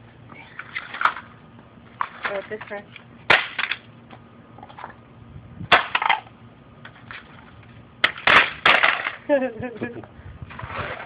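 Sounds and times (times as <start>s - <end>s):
plastic cracking on concrete: 0.7s - 1.4s, 2.0s - 3.9s, 5.7s - 7.3s, 8.0s - 9.2s.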